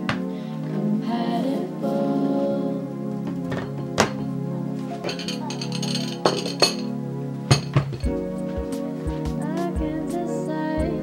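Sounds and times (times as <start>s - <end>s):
soft background music: 0.0s - 11.0s
tableware clinking: 3.5s - 4.3s, 5.0s - 6.9s, 7.5s - 8.1s.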